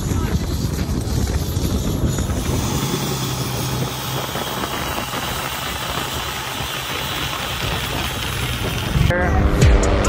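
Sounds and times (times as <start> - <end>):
rush of wind and spray: 0.0 - 9.1
boat diesel engine running: 0.0 - 9.4.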